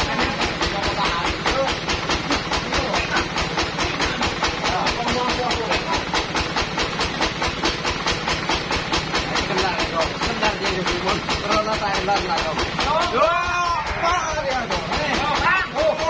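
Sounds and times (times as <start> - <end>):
sawmill machinery pulsing hiss: 0.0 - 15.6.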